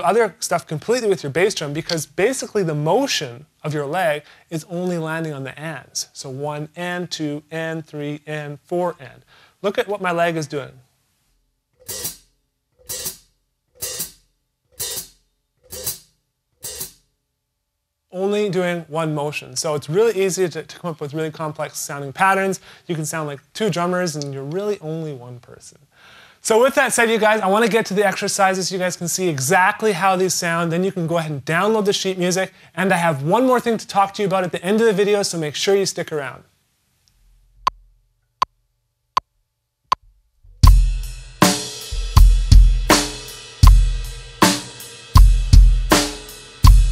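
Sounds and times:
hi-hat pedal chick: 0:11.8 - 0:12.2, 0:40.6 - 0:46.9
metronome clicking: 0:11.8 - 0:17.0.

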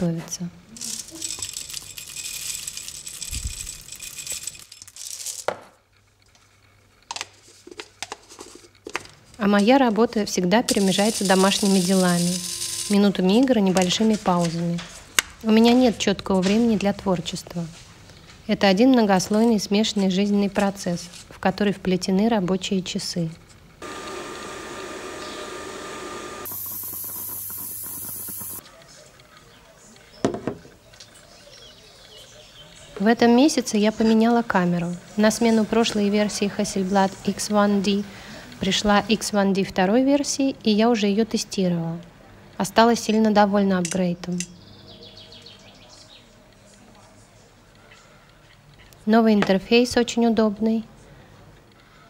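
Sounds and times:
coffee beans clattering into metal cup: 0:00.8 - 0:05.6, 0:10.7 - 0:13.0
steam hissing: 0:23.8 - 0:28.6.

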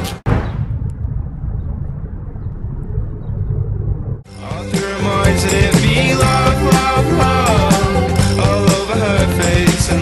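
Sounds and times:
low steady rumble: 0:00.3 - 0:04.3
music: 0:04.3 - 0:10.0.

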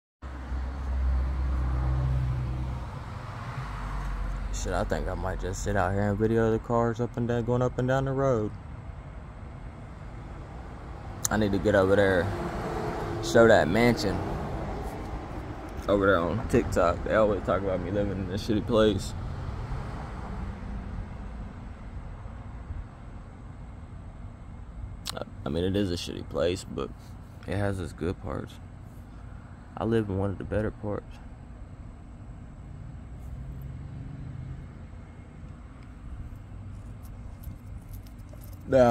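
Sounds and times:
car driving by: 0:00.3 - 0:04.9, 0:09.8 - 0:18.1, 0:33.2 - 0:35.3.

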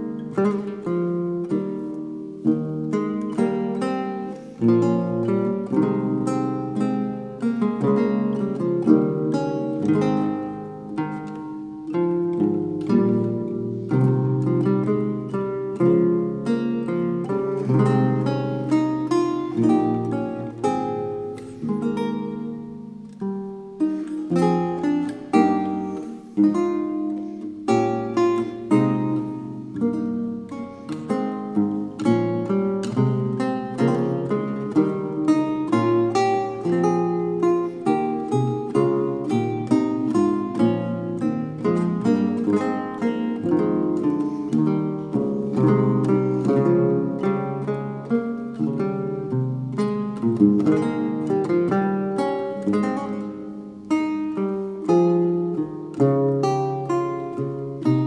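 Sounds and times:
lute playing: 0:00.0 - 0:58.0.

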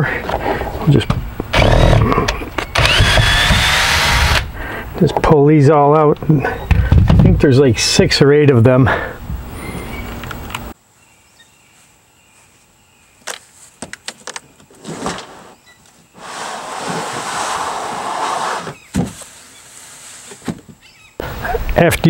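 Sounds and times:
cordless drill whirring: 0:02.6 - 0:04.5
plastic tray scraping: 0:16.2 - 0:18.9
thump: 0:18.9 - 0:19.2.

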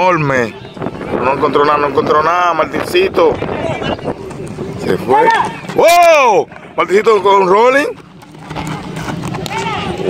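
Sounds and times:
people shouting: 0:05.0 - 0:06.5, 0:09.4 - 0:10.0.

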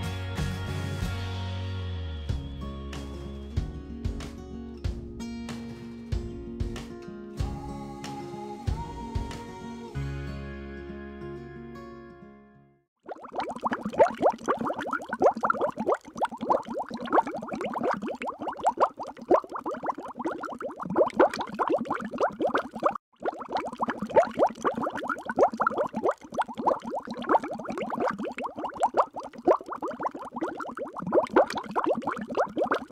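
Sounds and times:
underwater bubbles: 0:13.0 - 0:32.9.

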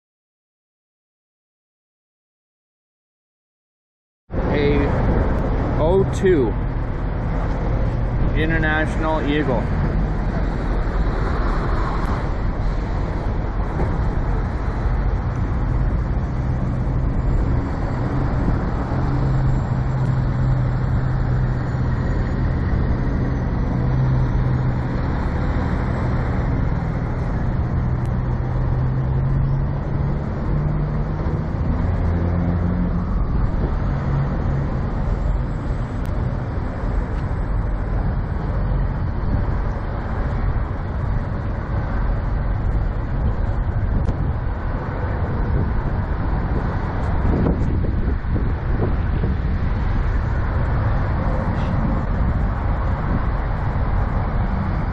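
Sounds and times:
diesel truck engines rumbling: 0:04.3 - 0:54.9.

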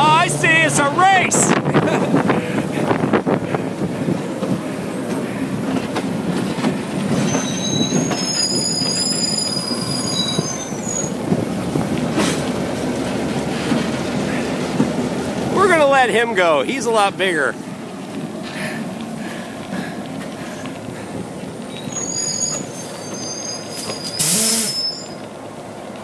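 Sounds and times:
diesel locomotives running past: 0:00.0 - 0:26.0
high-pitched wheel squeal: 0:07.1 - 0:11.2, 0:21.7 - 0:25.3.

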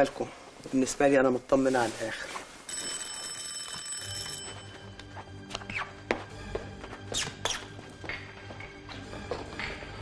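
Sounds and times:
high bell-like ringing: 0:02.7 - 0:04.9
low music: 0:04.5 - 0:10.0.

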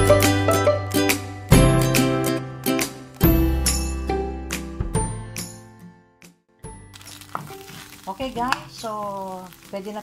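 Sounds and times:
bean paste sizzling in a pan: 0:06.9 - 0:10.0
spatula stirring and scraping: 0:07.0 - 0:10.0.

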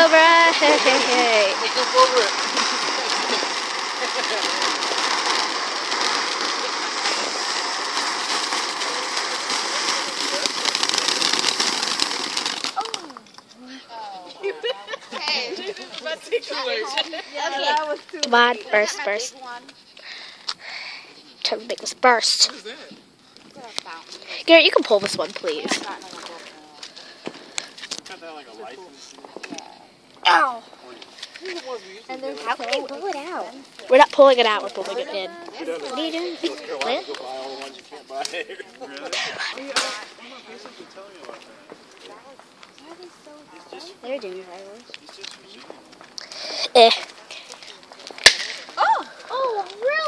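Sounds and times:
firework hissing and crackling: 0:00.0 - 0:50.0
people talking quietly: 0:00.0 - 0:50.0.

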